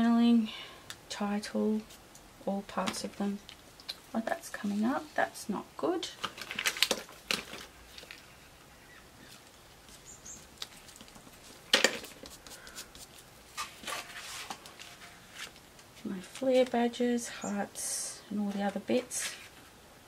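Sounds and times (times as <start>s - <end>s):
paper rustling: 9.3s - 15.6s.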